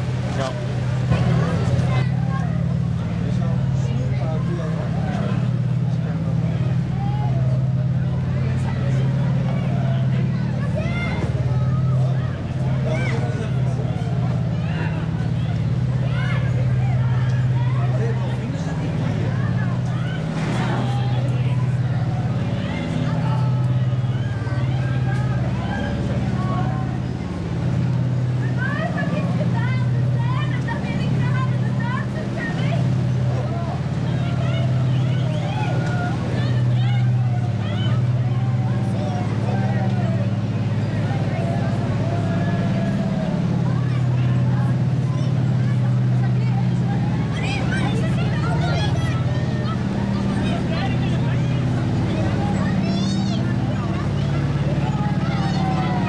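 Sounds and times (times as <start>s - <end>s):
crowd chatter: 0.0s - 56.0s
tank engine drone: 0.0s - 56.0s.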